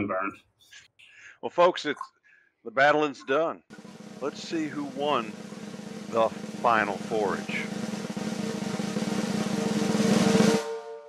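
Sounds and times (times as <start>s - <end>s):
snare drum roll: 3.7s - 10.9s.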